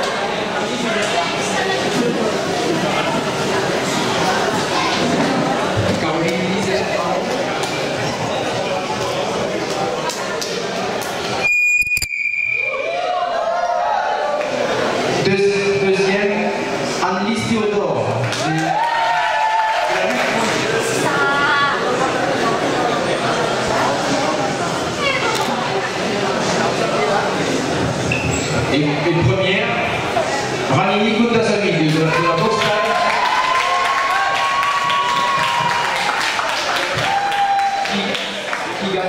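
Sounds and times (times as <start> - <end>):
faint crowd noise: 0.0 - 39.0
light applause: 31.8 - 39.0.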